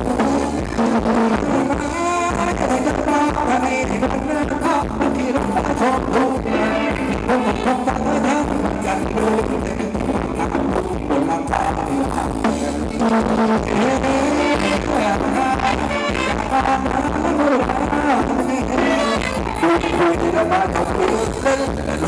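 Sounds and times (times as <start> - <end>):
live band playing dance song: 0.0 - 22.0.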